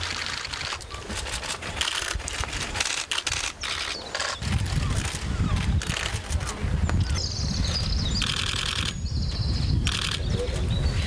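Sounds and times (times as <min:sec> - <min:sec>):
wind rumble on microphone: 0:00.0 - 0:11.0
small birds chirping: 0:03.3 - 0:11.0.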